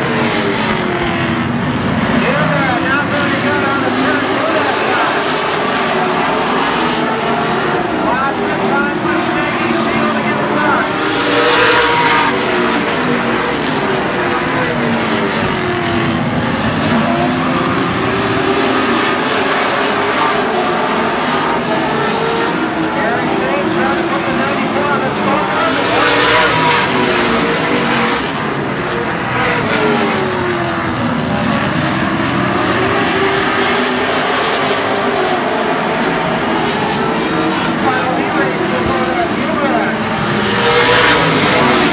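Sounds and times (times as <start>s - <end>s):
race car engines passing: 0.0s - 41.9s.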